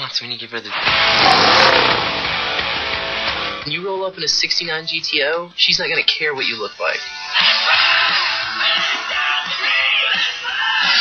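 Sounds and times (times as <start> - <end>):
music: 0.7 - 11.0
car engine revving hard: 0.9 - 3.5.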